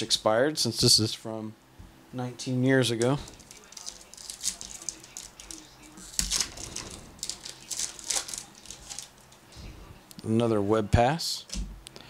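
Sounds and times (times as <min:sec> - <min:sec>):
wrapper crinkling and tearing: 0:03.3 - 0:09.4.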